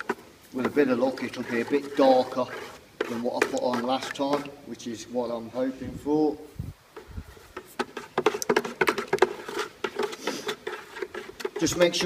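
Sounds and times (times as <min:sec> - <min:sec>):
stick stirring paint in bucket: 0:00.0 - 0:06.3, 0:06.9 - 0:12.0.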